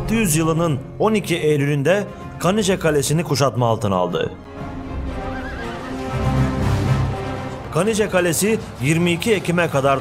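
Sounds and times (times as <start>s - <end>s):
background music: 0.0s - 10.0s
horse whinnying: 5.0s - 6.5s.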